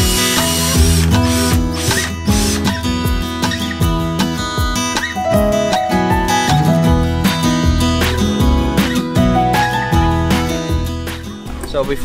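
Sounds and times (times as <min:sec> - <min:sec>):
strummed acoustic guitar music: 0:00.0 - 0:11.7.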